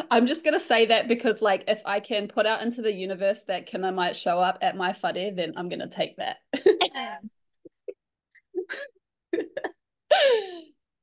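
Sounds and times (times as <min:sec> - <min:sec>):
woman giggling: 0:06.5 - 0:10.7.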